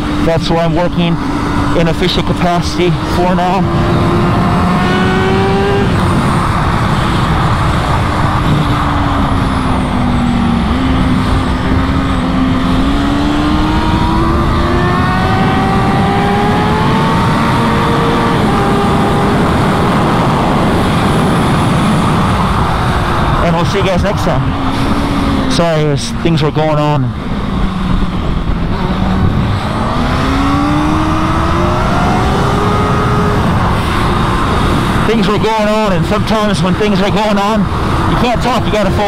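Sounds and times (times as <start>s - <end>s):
motorcycle engine at speed: 0.0s - 39.0s
rush of wind: 0.0s - 39.0s.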